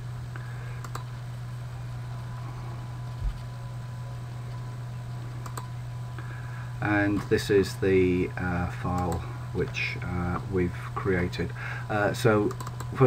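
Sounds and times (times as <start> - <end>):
low electrical hum: 0.0 - 13.0
computer mouse clicks: 0.8 - 1.1, 5.4 - 5.7, 8.9 - 9.2, 12.4 - 12.9.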